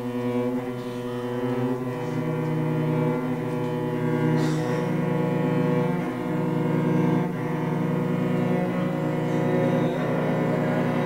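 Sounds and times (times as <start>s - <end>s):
cellos bowing low notes: 0.0s - 11.0s.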